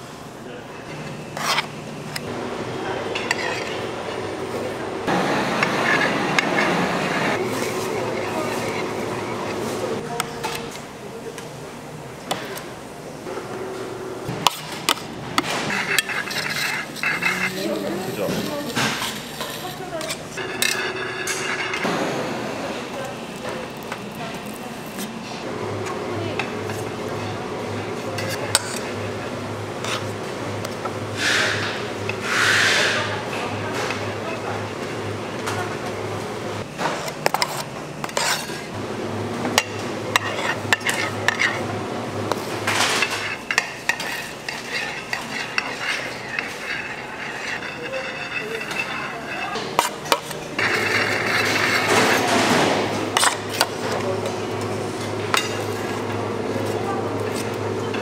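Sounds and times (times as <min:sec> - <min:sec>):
steady low hum: 0:00.0 - 0:32.3
metal spatulas scraping bowls: 0:01.4 - 0:01.7, 0:03.2 - 0:04.2, 0:05.6 - 0:10.6, 0:14.5 - 0:21.9, 0:28.1 - 0:29.0, 0:37.0 - 0:38.8, 0:39.6 - 0:41.6, 0:42.3 - 0:54.0.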